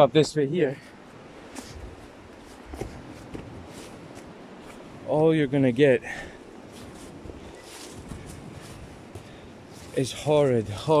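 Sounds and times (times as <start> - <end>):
rustling undergrowth: 0.6 - 11.0
footsteps on stones: 6.7 - 10.0.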